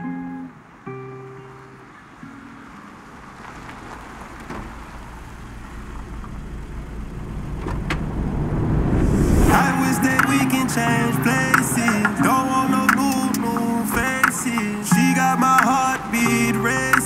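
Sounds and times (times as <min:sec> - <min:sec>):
music: 0:00.0 - 0:02.8, 0:09.5 - 0:17.0
low traffic rumble: 0:00.5 - 0:17.0.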